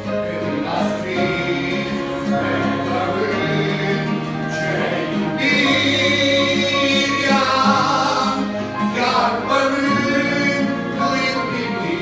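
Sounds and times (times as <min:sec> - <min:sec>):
man singing gospel song: 0:00.0 - 0:12.0
musical accompaniment: 0:00.0 - 0:12.0.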